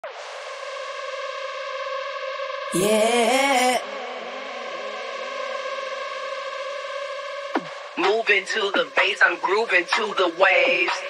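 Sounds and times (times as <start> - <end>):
held synthesizer chord: 0.4 - 8.0.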